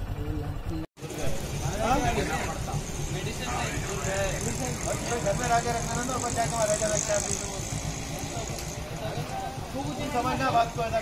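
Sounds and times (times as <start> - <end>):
motorcycle engine idling: 0.0 - 11.0
men talking: 1.0 - 11.0.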